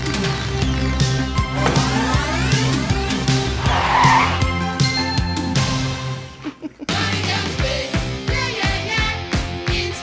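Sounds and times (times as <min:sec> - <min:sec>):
background music with a beat: 0:00.0 - 0:10.0
bike tyres skidding on pavement: 0:01.5 - 0:05.0.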